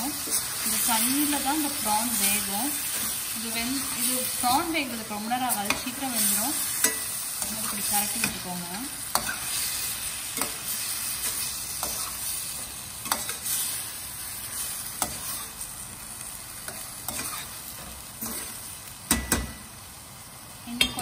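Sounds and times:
metal spoon scraping a pan: 0.0 - 15.7, 16.7 - 19.6
prawns sizzling in a pan: 0.0 - 21.0.

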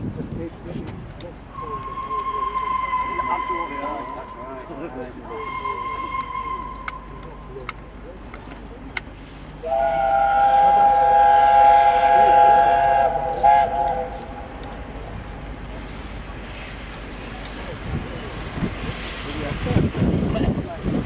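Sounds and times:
steam locomotive chime whistle: 1.5 - 7.5, 9.6 - 14.6.

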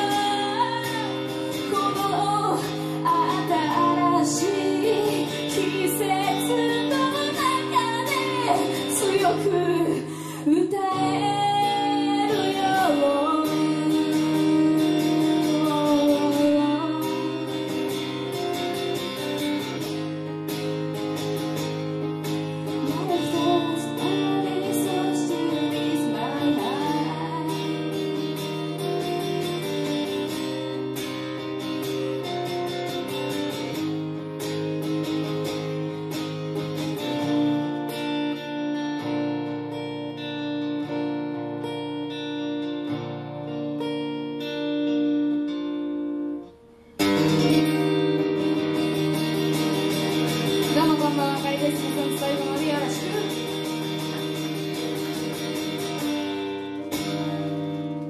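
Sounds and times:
acoustic guitar strumming: 0.0 - 58.0.

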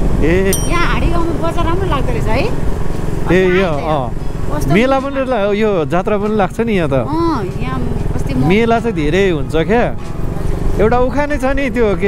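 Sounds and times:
voices talking: 0.5 - 2.6, 3.2 - 12.0.

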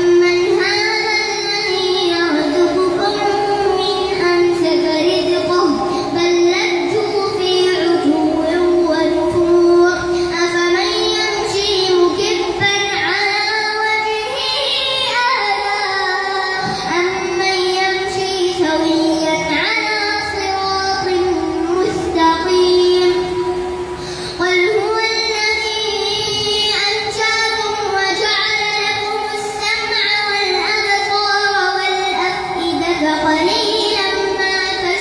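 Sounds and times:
boy chanting into a microphone: 0.0 - 35.0.

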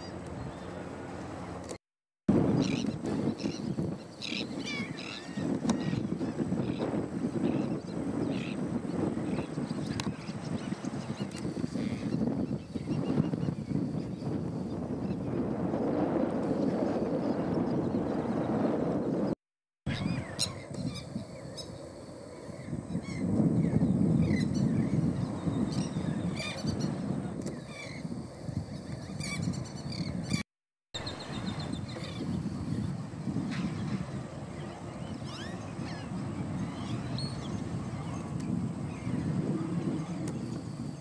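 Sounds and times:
wind rumble on microphone: 0.0 - 41.0.

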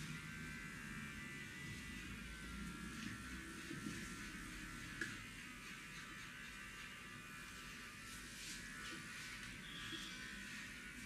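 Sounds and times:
thin high buzz: 5.9 - 11.0.

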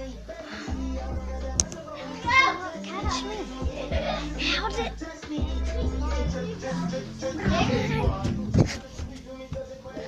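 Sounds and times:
children talking: 1.9 - 8.4.

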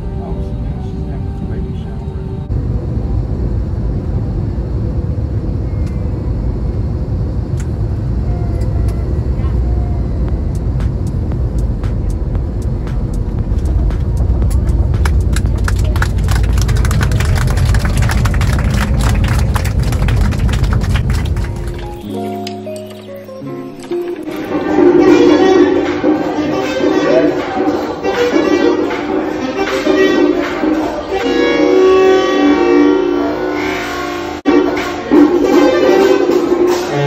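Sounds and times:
low engine and runway rumble: 0.0 - 22.0.

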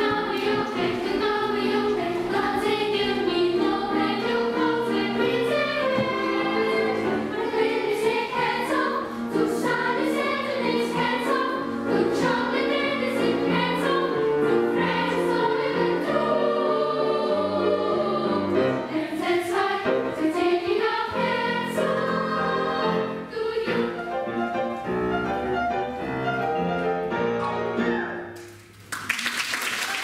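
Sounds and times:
children's choir singing: 0.0 - 24.8
piano accompaniment: 0.0 - 28.8.

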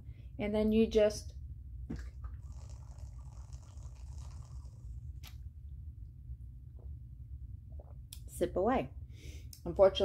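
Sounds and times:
airy sucking hiss: 2.4 - 5.0.

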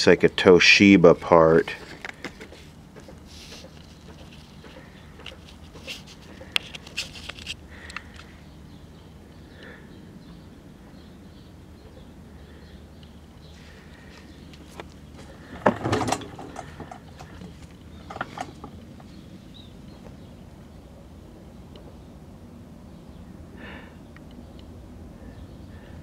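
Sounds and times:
low background hum: 0.0 - 26.0
handling clicks and rustles: 1.1 - 8.4, 13.0 - 20.3.

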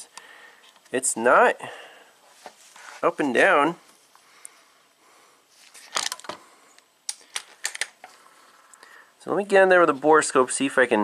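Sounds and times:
tools clicking and knocking: 7.1 - 8.1.

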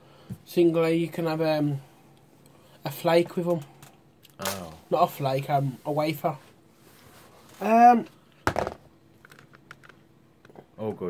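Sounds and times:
knock on table: 8.4 - 8.9.

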